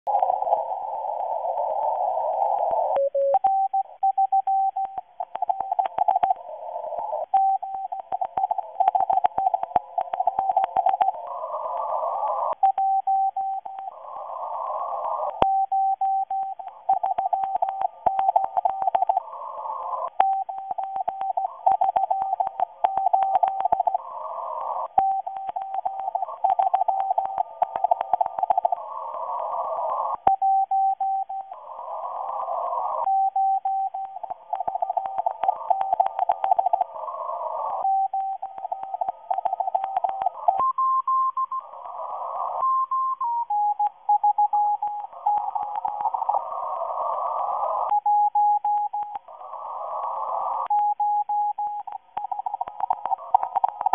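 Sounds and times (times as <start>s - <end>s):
radio hiss: 0.1s - 53.9s
static clicks: 0.1s - 53.9s.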